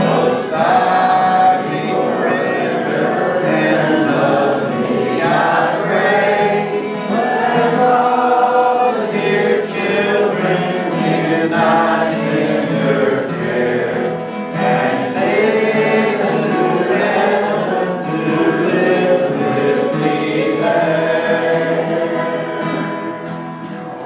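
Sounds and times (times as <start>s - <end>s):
acoustic guitars strummed: 0.0s - 24.0s
group singing gospel song: 0.0s - 24.0s.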